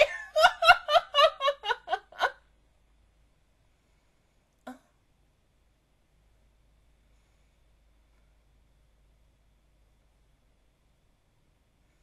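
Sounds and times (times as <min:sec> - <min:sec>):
person laughing: 0:00.0 - 0:02.4.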